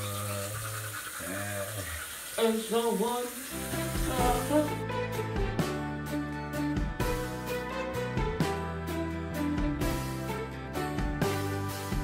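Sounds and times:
toothbrush scrubbing: 0.0 - 4.6
person humming: 1.2 - 2.0, 4.0 - 4.8.

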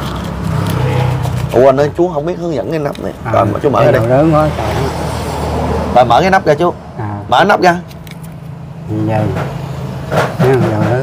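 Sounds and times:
man speaking: 1.5 - 5.0, 5.9 - 7.9.

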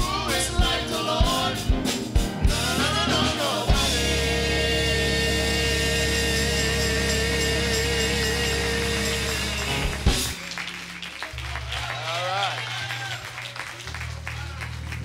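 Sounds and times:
choir and band holding note: 0.0 - 10.3
drum and cymbal hit: 0.0 - 10.4
scattered applause: 8.4 - 15.0.

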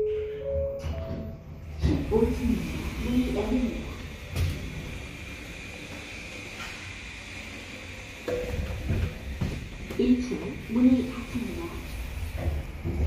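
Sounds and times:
elevator high hum: 0.0 - 13.0.

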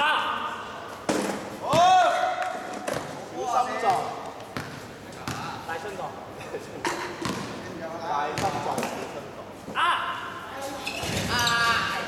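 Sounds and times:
basketball bouncing on hard court: 4.6 - 5.5, 7.2 - 7.5, 8.4 - 8.6.

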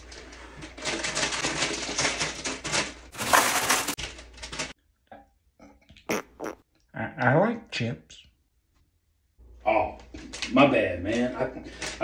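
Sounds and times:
plastic chip bag crinkling: 0.8 - 4.7.

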